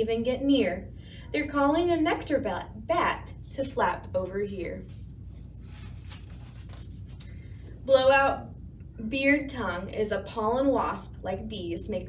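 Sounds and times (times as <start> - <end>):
book pages being turned: 4.8 - 7.3.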